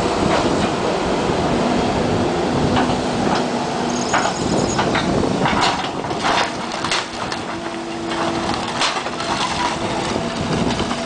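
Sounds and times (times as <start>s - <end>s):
excavator engine running: 0.0s - 11.0s
excavator bucket crushing debris: 4.1s - 11.0s
splintering wood cracks: 5.5s - 11.0s.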